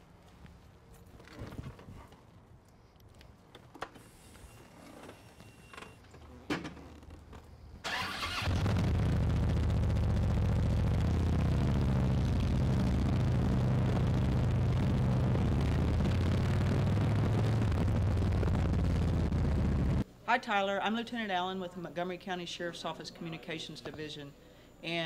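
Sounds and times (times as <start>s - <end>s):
motorcycle engine starting and running: 7.8s - 20.0s.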